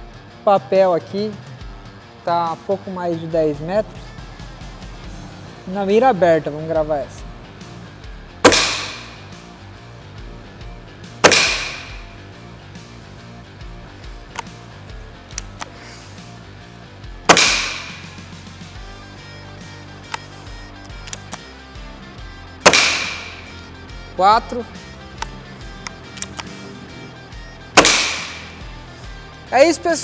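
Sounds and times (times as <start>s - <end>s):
background music: 0.0s - 30.0s
air rifle shots echoing: 8.4s - 9.3s, 11.2s - 12.2s, 17.3s - 18.3s, 22.6s - 23.6s, 27.7s - 28.7s.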